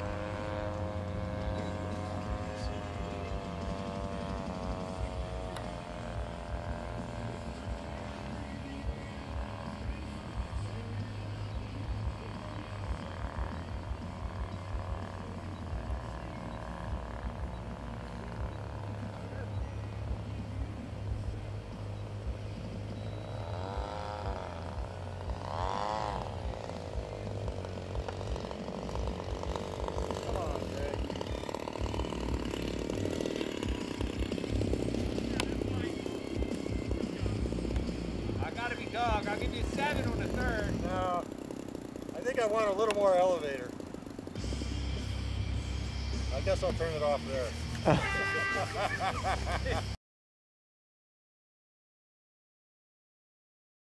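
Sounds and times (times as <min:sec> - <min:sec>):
model plane engine in flight: 0:00.0 - 0:50.0.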